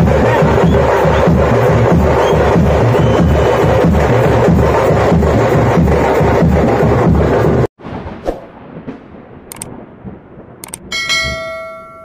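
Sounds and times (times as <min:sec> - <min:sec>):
quick double clicks: 0:09.5 - 0:09.7, 0:10.6 - 0:10.8
bell chime: 0:10.9 - 0:12.0.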